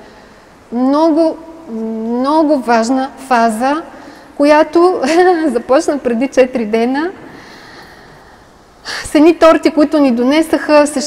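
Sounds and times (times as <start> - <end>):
woman speaking: 0.7 - 7.2, 8.9 - 11.0
soft breath into microphone: 7.3 - 9.1.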